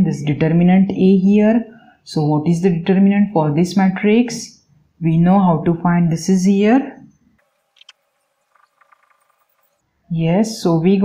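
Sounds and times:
marker pen squeaking on paper: 7.7s - 9.8s.

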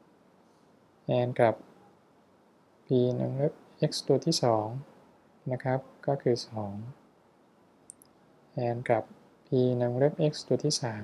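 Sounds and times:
man talking: 1.1s - 1.6s, 2.9s - 4.9s, 5.5s - 7.0s, 8.6s - 11.0s.

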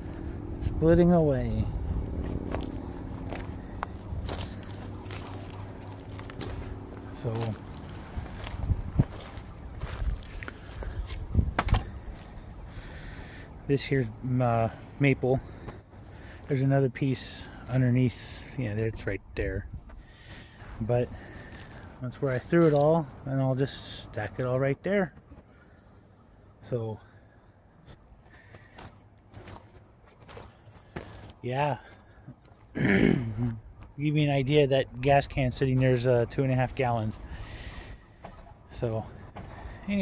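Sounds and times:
faint footsteps on dirt: 1.4s - 23.2s, 27.7s - 32.7s
wind noise on microphone: 8.0s - 12.0s.

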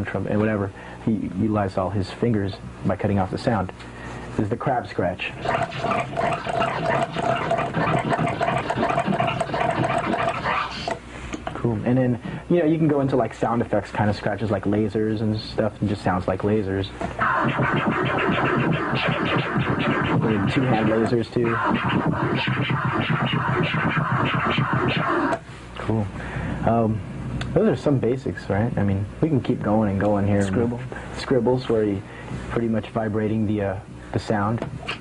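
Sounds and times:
turntable scratching stutters: 5.3s - 11.0s, 17.2s - 25.4s.

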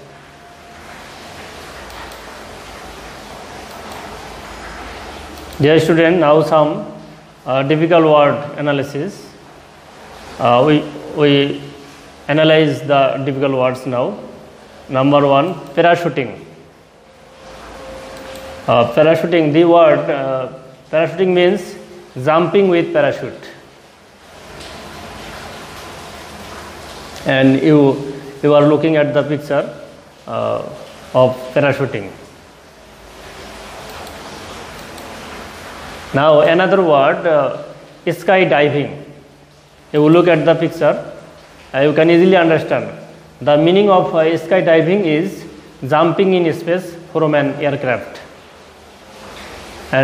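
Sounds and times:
background hiss: 0.0s - 50.0s.

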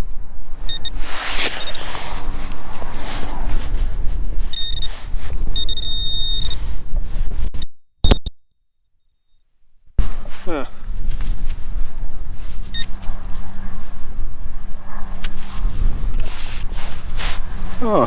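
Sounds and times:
wind buffeting microphone: 0.0s - 7.5s, 10.0s - 18.0s
soil scraping: 0.8s - 5.4s, 10.0s - 18.0s
pinpointer high tone: 4.5s - 4.9s, 5.6s - 6.6s, 7.6s - 9.4s.

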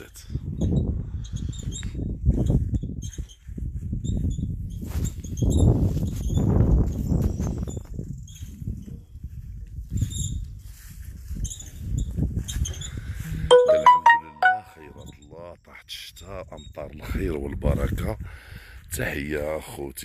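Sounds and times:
wind rumbling on microphone: 0.0s - 13.5s, 17.0s - 18.8s
short electronic chime: 13.5s - 15.0s.

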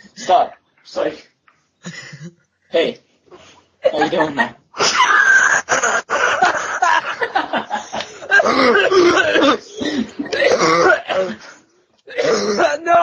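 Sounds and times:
people laughing hard: 3.8s - 11.4s
people coughing: 7.8s - 12.8s.

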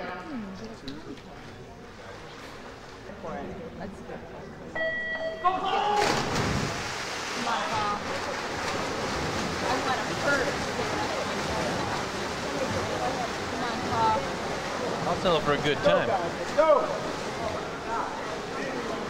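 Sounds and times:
race start signal tone: 4.8s - 5.4s
swimmers splashing: 5.7s - 19.0s.

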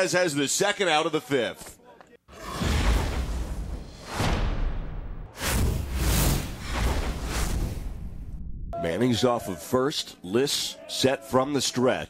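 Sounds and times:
whoosh: 2.4s - 8.8s.

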